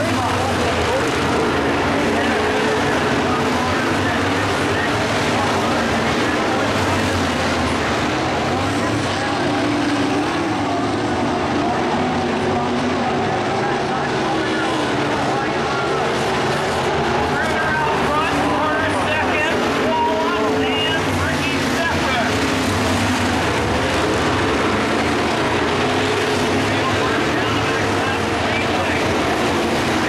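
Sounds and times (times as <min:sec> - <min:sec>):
race car engines revving: 0:00.0 - 0:30.0.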